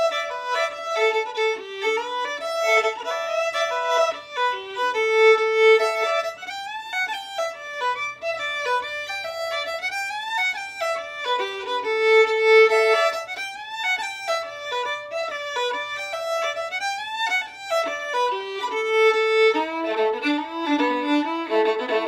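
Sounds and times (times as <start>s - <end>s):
solo fiddle dance tune: 0.0s - 22.0s.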